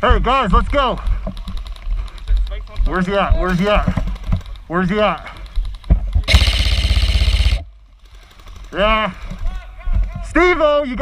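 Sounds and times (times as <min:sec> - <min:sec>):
airsoft rifle full-auto burst: 0:04.2 - 0:09.3.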